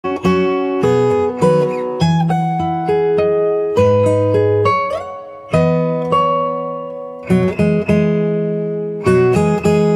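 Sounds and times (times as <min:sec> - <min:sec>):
fingerstyle acoustic guitar: 0:00.0 - 0:09.9.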